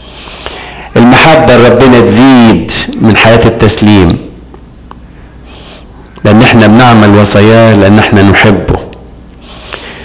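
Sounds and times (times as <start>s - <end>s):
man's amplified voice: 0.9s - 4.4s, 6.2s - 9.0s.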